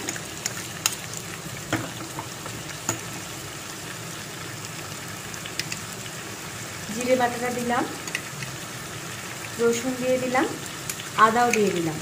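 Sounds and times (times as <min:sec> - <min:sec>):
onions frying in oil: 0:00.0 - 0:12.0.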